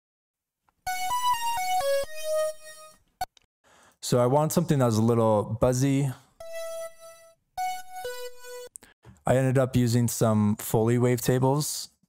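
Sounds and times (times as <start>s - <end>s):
buzzy synth notes: 6.4s - 8.7s.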